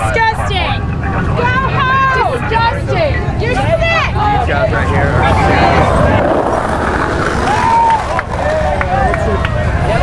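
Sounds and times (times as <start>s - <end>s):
low rumble of street noise: 0.0s - 10.0s.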